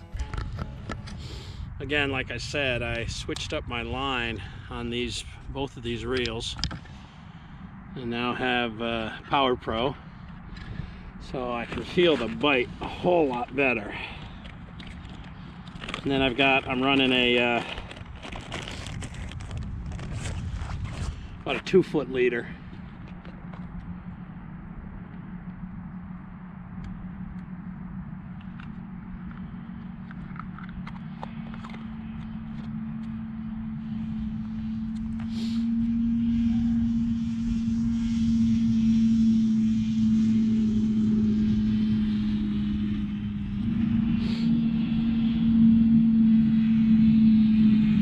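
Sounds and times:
engine drone: 0:00.0 - 0:48.0.

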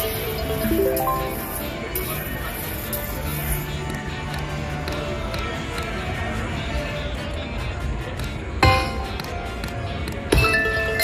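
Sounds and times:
slot machine game music: 0:00.0 - 0:02.4.

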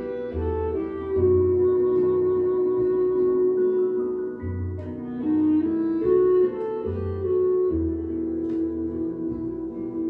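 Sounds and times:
instrumental music from loudspeakers: 0:00.0 - 0:10.0.

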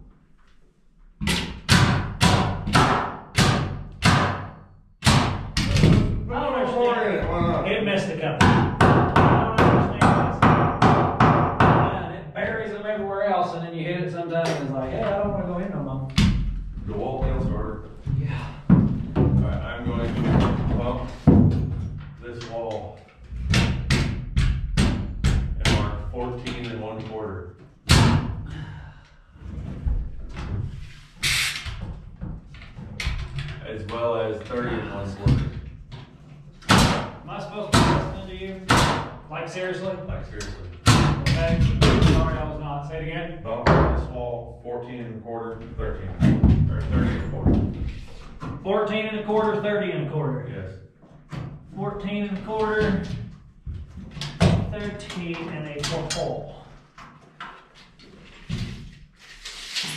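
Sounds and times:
hammering on wood framing: 0:01.2 - 0:06.2, 0:08.4 - 0:12.0, 0:23.4 - 0:26.0, 0:36.6 - 0:39.2, 0:40.8 - 0:42.4.

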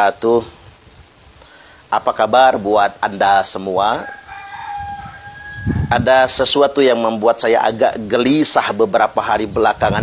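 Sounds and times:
rooster crowing: 0:03.8 - 0:06.4.

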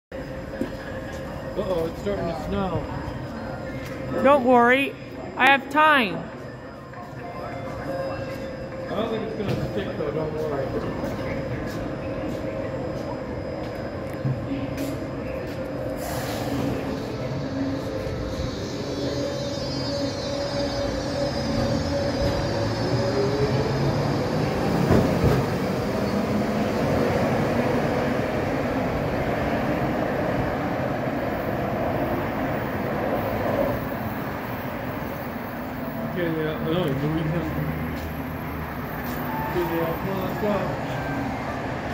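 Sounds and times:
rumble of train wheels: 0:00.1 - 0:41.9.

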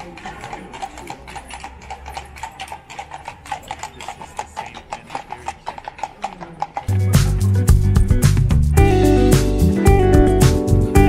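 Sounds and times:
horse hooves on stone: 0:00.0 - 0:08.7
music with plucked guitar: 0:06.9 - 0:11.0.

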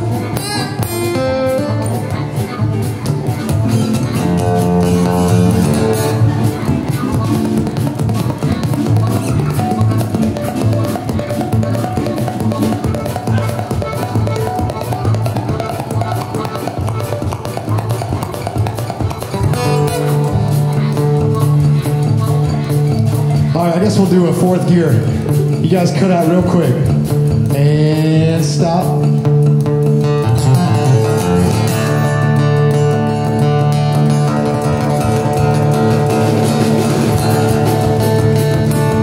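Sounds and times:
harmonica: 0:00.0 - 0:27.4, 0:28.9 - 0:39.0
acoustic guitar strumming: 0:00.0 - 0:39.0
drums: 0:00.0 - 0:39.0
upright bass: 0:00.0 - 0:39.0.

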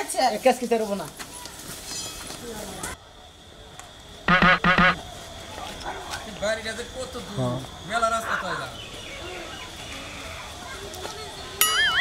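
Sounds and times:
duck quacking: 0:04.3 - 0:05.0.

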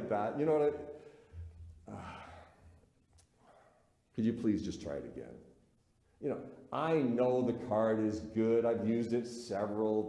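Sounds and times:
man sighing: 0:01.3 - 0:02.8.

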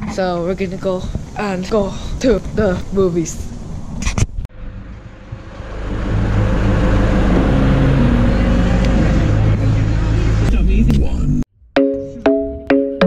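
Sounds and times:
car engine running: 0:04.5 - 0:11.4.

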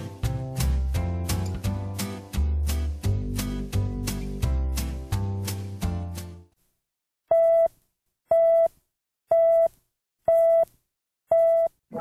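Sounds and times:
music: 0:00.0 - 0:06.5.

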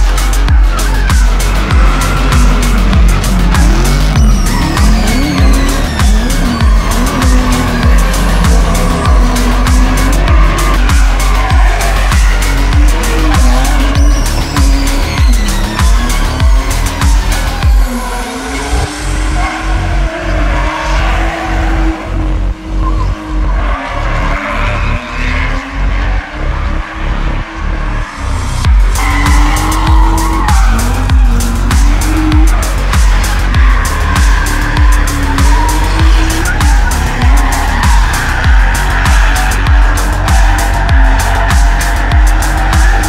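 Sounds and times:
background music with steady beat: 0:00.0 - 0:43.0
car engine revving: 0:00.0 - 0:43.0
tyres squealing: 0:00.0 - 0:43.0.

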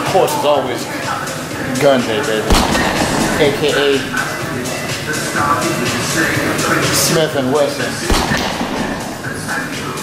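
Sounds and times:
man talking: 0:00.0 - 0:05.2, 0:06.8 - 0:08.4
sharp thump: 0:02.5 - 0:04.2, 0:08.1 - 0:09.7.

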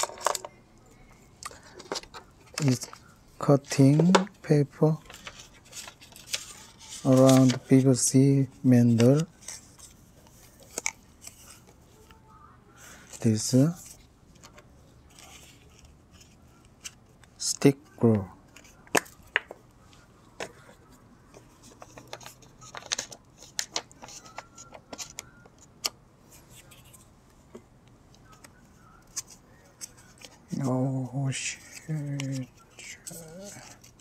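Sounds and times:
man talking: 0:02.6 - 0:05.1, 0:07.0 - 0:09.3, 0:13.2 - 0:13.9, 0:17.4 - 0:18.4, 0:30.5 - 0:33.7
paper strip rustling: 0:04.8 - 0:08.1, 0:21.4 - 0:27.1, 0:28.2 - 0:34.0.

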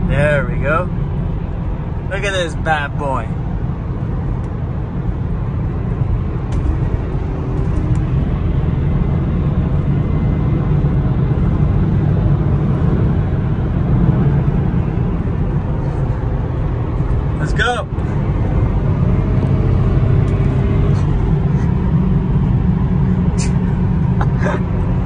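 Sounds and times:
car road and engine noise: 0:00.0 - 0:25.0.

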